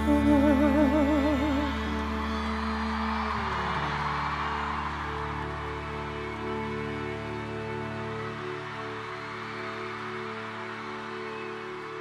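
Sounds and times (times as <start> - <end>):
audience cheering and screaming: 0.0 - 12.0.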